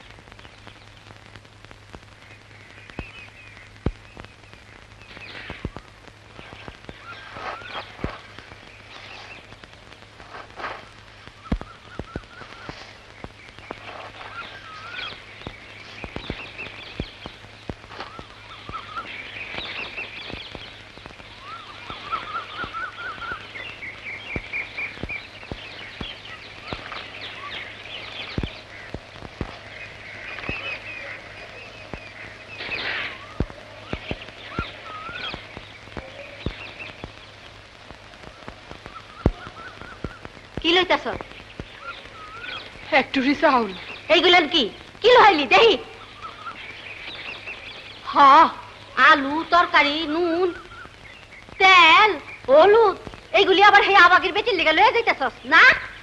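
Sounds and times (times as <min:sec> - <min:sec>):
small birds chirping: 0:00.0 - 0:56.0
steady low hum: 0:00.0 - 0:56.0.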